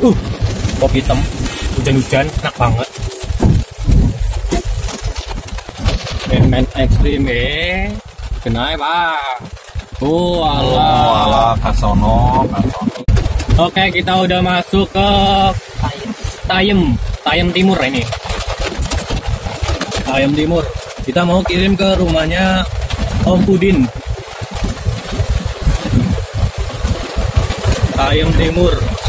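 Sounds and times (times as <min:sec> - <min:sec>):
engine and road rumble: 0:00.0 - 0:29.0.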